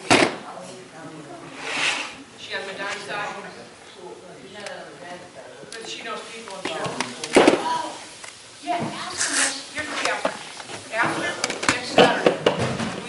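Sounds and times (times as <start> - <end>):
people talking indistinctly: 0.0 - 13.0.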